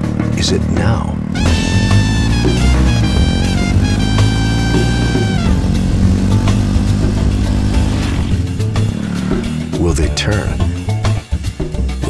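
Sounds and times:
motorcycle engine running: 0:01.0 - 0:09.9
soundtrack music with held notes: 0:01.4 - 0:12.0.

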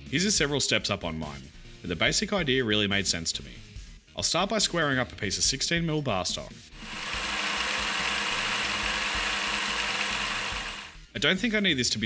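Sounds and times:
milling machine cutting steel: 0:06.8 - 0:11.0.

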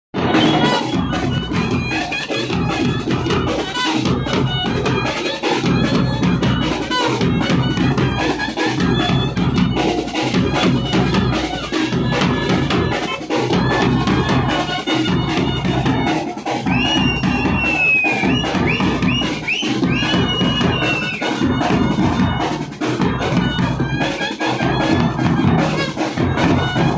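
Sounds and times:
bass drums and side drum: 0:00.2 - 0:26.9
brass band playing: 0:00.2 - 0:26.9.

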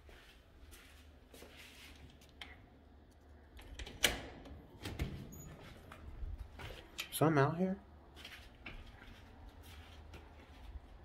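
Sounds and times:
door opening: 0:03.6 - 0:06.1.

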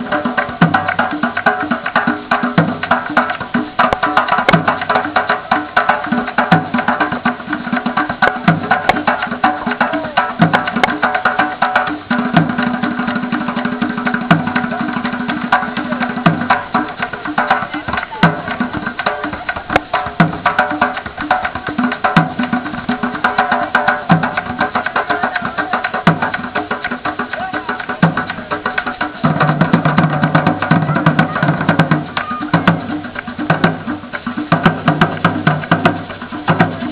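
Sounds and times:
hand drums playing fast rhythm: 0:00.0 - 0:36.9
stick hits on drum: 0:00.4 - 0:11.8.

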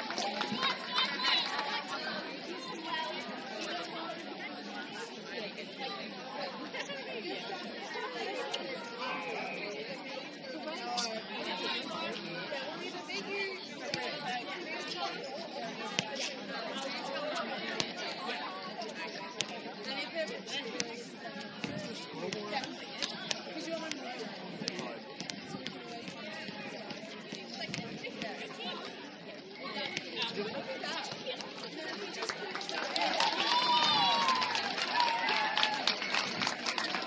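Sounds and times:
many people chattering: 0:00.0 - 0:37.0.

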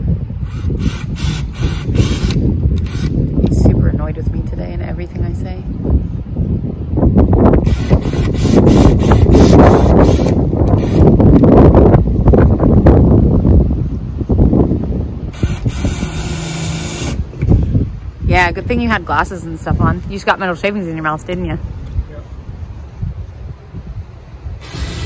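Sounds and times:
cordless drill grinding through metal: 0:07.7 - 0:11.1, 0:15.3 - 0:17.2, 0:24.6 - 0:25.0.

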